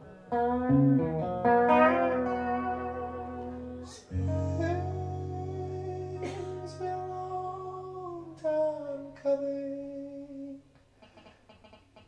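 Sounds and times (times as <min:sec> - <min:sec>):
sustained guitar chord: 0:00.7 - 0:09.2
man singing long notes: 0:02.2 - 0:10.7.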